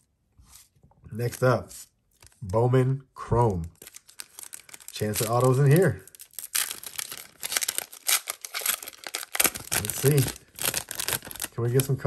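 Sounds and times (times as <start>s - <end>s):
foil wrapper crinkling: 3.7s - 12.0s.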